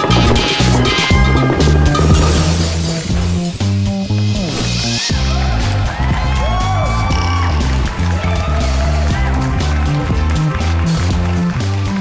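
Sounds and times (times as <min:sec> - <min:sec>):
bright crash: 0:00.0 - 0:03.8
upbeat trailer music: 0:00.0 - 0:12.0.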